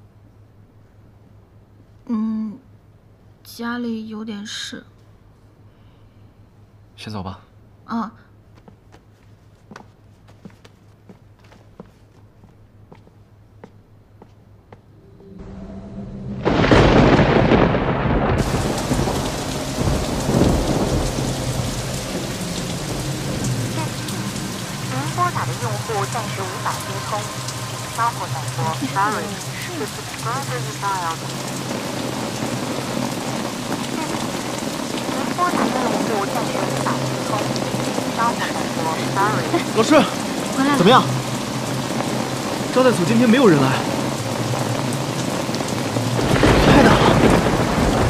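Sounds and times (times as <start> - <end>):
heavy rain: 15.4 - 48.0
loud thunderclap: 16.3 - 39.6, 45.6 - 48.0.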